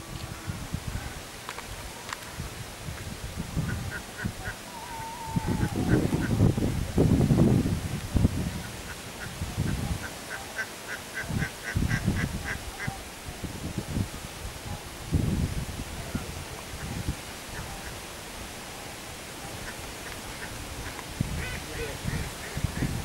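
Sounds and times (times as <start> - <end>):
wind rumble on microphone: 0.0 - 10.3, 11.1 - 23.0.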